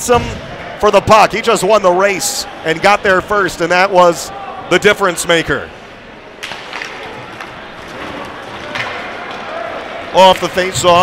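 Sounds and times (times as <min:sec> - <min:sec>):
hockey sticks clacking on puck: 0:06.4 - 0:09.5, 0:10.2 - 0:11.0.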